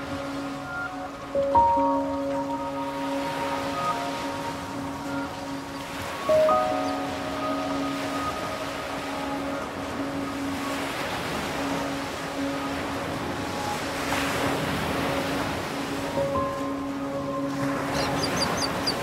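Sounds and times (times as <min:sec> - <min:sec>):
ocean surf washing on beach: 0:00.0 - 0:19.0
soft ambient music: 0:00.0 - 0:19.0.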